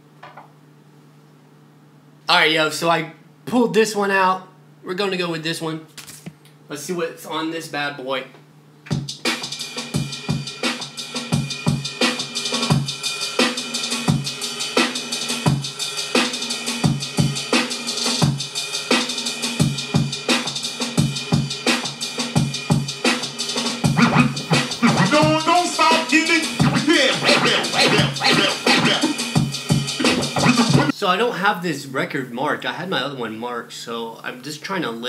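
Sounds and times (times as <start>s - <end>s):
music with drum beat: 8.9s - 30.9s.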